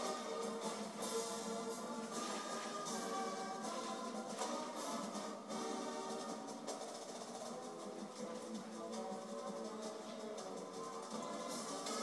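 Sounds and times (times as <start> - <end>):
marching band through tv speaker: 0.0 - 12.0.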